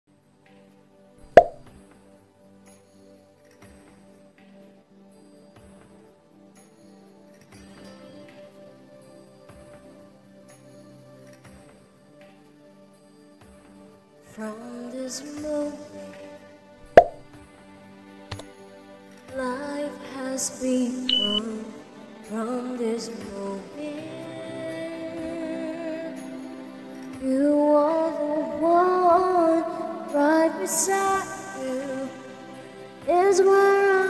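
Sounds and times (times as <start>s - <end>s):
quiet instrumental music: 0.1s - 34.0s
sharp pop near microphone: 1.2s - 1.8s, 16.9s - 17.4s
pop ballad backing track: 19.3s - 34.0s
person singing: 19.4s - 26.7s, 27.3s - 34.0s.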